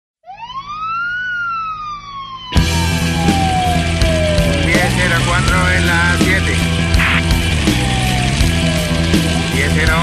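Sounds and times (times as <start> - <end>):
police siren wailing: 0.2 - 10.0.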